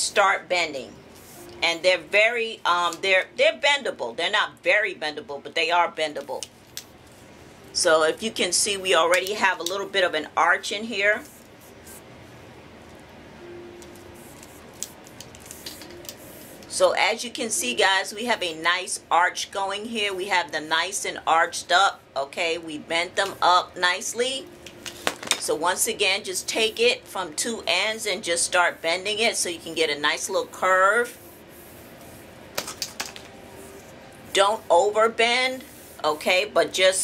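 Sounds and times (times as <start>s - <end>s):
low room hiss: 0.0s - 37.0s.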